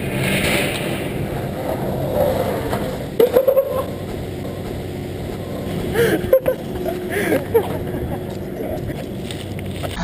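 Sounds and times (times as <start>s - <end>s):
skateboard wheels rolling on concrete: 0.0s - 10.0s.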